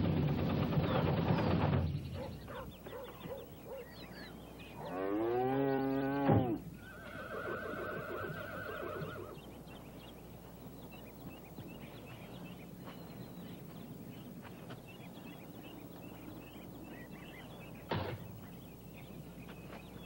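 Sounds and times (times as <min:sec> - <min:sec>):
cow lowing: 0:04.7 - 0:09.2
wavering animal call: 0:04.7 - 0:09.4.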